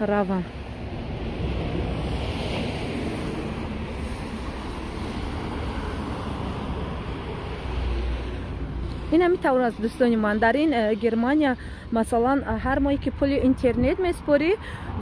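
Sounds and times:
road traffic passing: 0:00.0 - 0:15.0.

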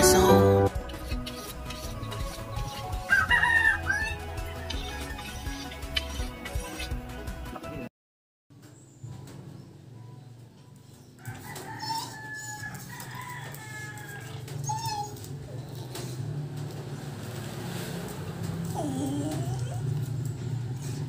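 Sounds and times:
chickens calling: 0:00.0 - 0:07.0
rooster crowing: 0:03.1 - 0:04.2, 0:11.2 - 0:14.5.

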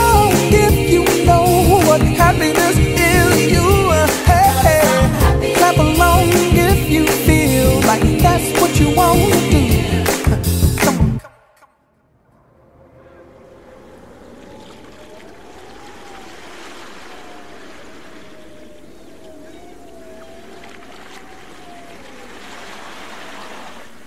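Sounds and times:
waves washing: 0:12.5 - 0:24.0.

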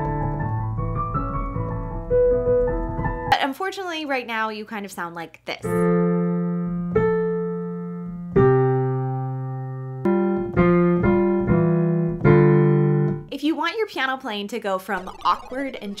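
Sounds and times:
halting digital piano chords: 0:15.0 - 0:16.0.

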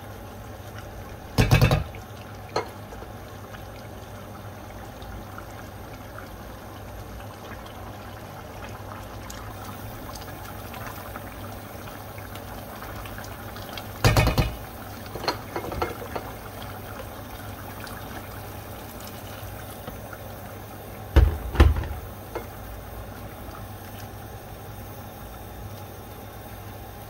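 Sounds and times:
curry bubbling in a pot: 0:00.0 - 0:27.0
spoon knocking against pot: 0:01.4 - 0:01.9, 0:14.0 - 0:14.6.

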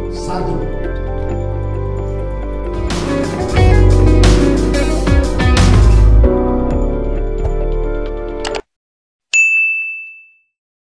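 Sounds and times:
notification bell ding: 0:09.4 - 0:10.6.

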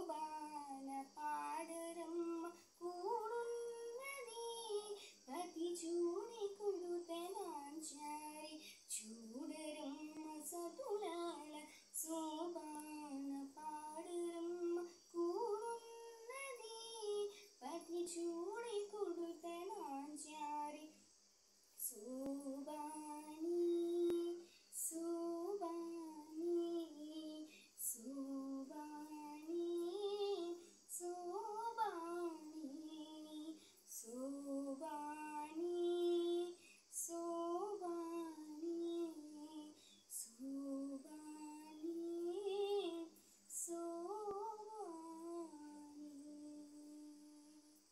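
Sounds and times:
girl singing: 0:00.0 - 0:21.0, 0:21.8 - 0:47.9.

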